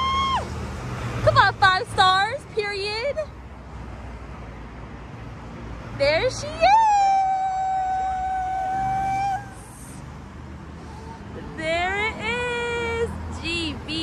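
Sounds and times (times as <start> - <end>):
low street noise: 0.0 - 14.0
high voice singing: 6.4 - 10.0.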